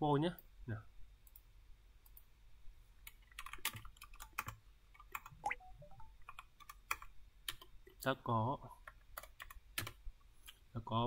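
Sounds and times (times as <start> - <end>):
typing on computer keyboard: 3.0 - 5.4, 6.2 - 8.0, 8.8 - 10.0.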